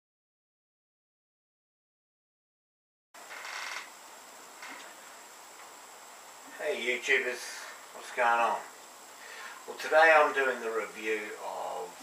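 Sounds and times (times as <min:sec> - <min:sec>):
faint high whine: 0:03.2 - 0:12.0.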